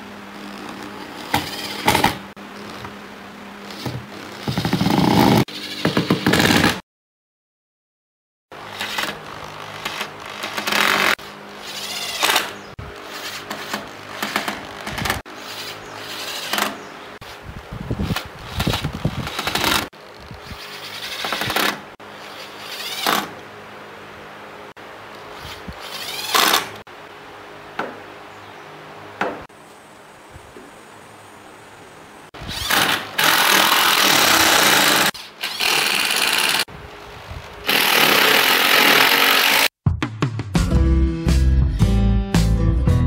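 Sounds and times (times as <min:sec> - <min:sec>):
impact driver driving screws: 0:08.7 - 0:16.8, 0:18.1 - 0:19.9, 0:20.5 - 0:23.4, 0:25.5 - 0:26.8, 0:32.4 - 0:36.6.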